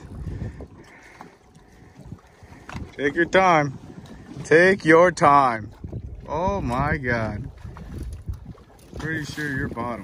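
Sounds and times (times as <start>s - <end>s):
water against boat hull: 0.0s - 10.0s
wind rumbling on microphone: 0.0s - 10.0s.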